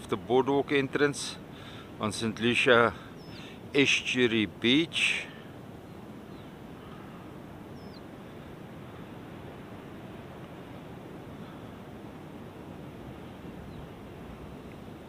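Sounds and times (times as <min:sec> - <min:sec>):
outdoor ambient noise: 0:00.0 - 0:15.0
faint bird chirps: 0:02.9 - 0:03.6, 0:05.9 - 0:08.5.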